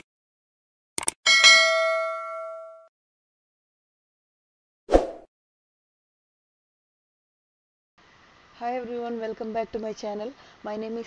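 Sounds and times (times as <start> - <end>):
bright bell ding: 1.3 - 2.9.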